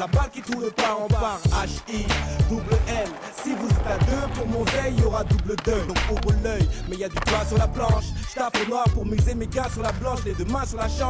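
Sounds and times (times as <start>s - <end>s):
hip-hop backing track: 0.0s - 11.0s
skateboard wheels rolling on concrete: 0.0s - 11.0s
skateboard grinding on ledge: 0.5s - 8.0s.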